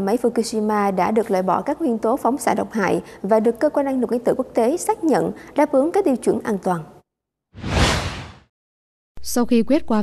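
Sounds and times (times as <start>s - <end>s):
whoosh sound effect: 7.6s - 8.5s.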